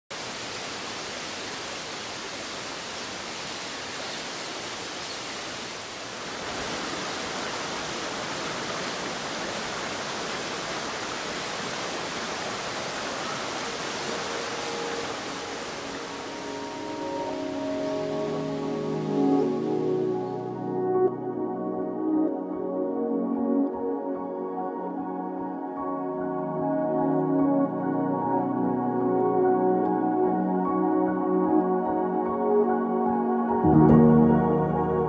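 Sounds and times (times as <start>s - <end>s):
rocky stream rushing: 0.1s - 20.2s
soft music with held notes: 13.2s - 35.0s.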